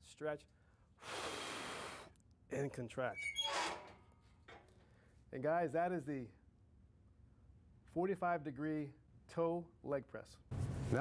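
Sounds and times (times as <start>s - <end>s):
leg press sled squeaking on rails: 3.2s - 4.0s.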